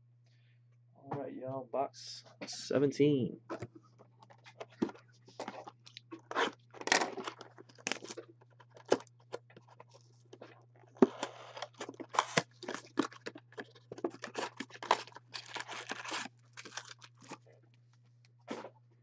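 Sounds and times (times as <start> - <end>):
plastic wrap crackling: 11.6 - 17.4.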